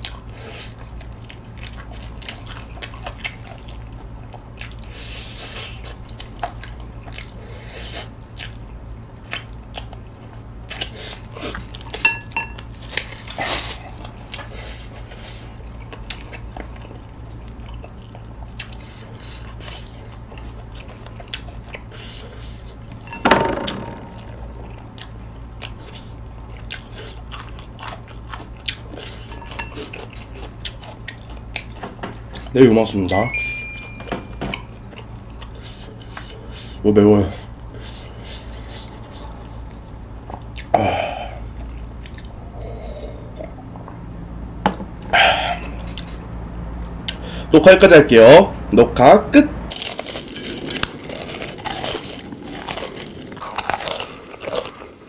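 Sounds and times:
biting and chewing chicken: 0.0 - 33.2, 34.4 - 43.6, 49.7 - 55.0.

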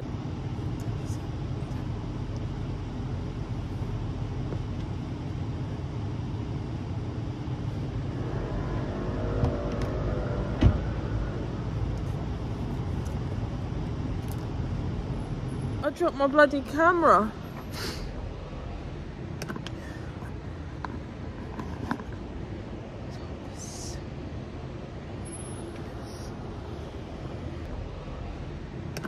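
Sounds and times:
street traffic rumble: 0.0 - 29.0
vehicle passing by: 7.9 - 12.8.

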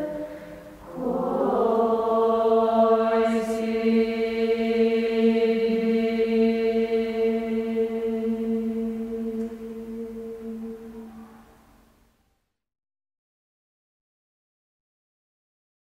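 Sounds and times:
women's choir singing unaccompanied: 0.0 - 11.5.

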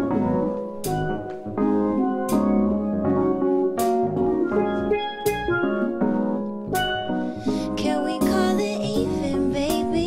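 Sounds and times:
steel pan band playing: 3.8 - 7.4.

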